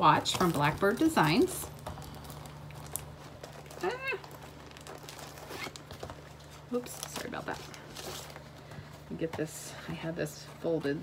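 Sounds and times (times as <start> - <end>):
rustling handling noises: 0.0 - 11.0
steady low hum: 0.0 - 11.0.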